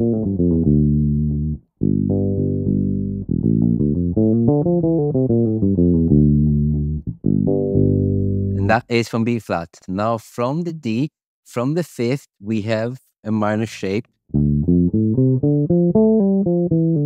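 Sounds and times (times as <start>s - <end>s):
electric bass playing scale: 0.0s - 8.8s, 14.3s - 17.0s.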